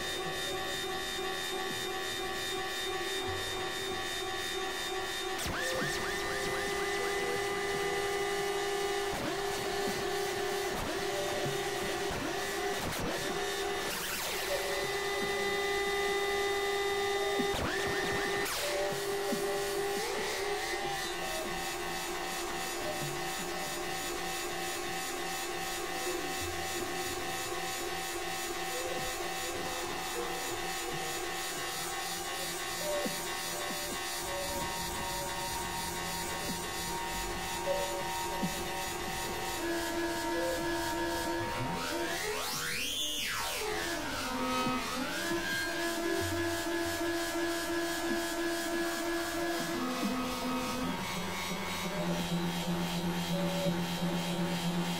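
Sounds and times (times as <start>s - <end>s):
electronic synthesizer drone: 0.0s - 54.9s.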